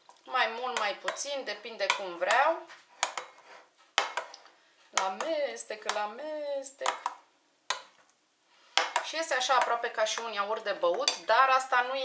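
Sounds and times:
spoon stirring in glass bowl: 0:03.0 - 0:06.1, 0:08.8 - 0:11.3.

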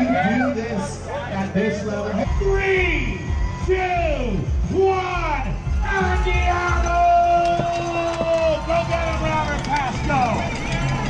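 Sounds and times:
spectators shouting and cheering: 0:00.0 - 0:11.0
bike cleats clicking into pedals: 0:06.4 - 0:11.0.

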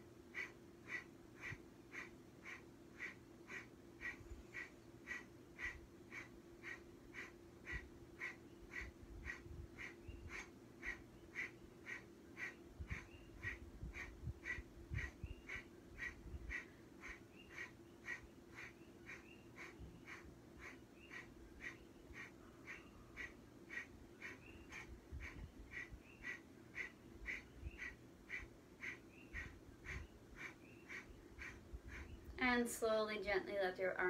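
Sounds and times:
faint low hum: 0:00.0 - 0:34.0.

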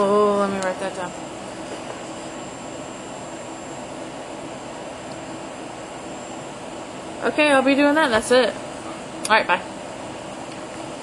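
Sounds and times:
air conditioning hum and hiss: 0:00.0 - 0:11.0.

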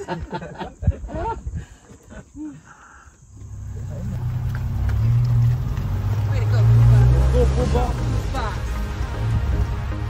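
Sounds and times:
vehicle engine humming: 0:03.2 - 0:10.0.

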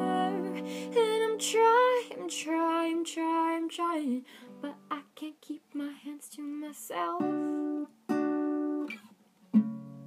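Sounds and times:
acoustic guitar strumming: 0:07.2 - 0:10.0.

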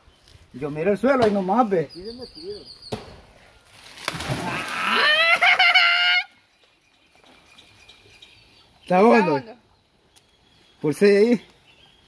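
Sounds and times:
water splashing: 0:03.6 - 0:06.4.

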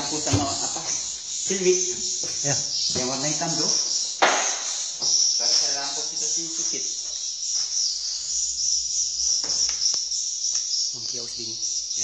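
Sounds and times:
swiftlets twittering: 0:00.0 - 0:12.0.

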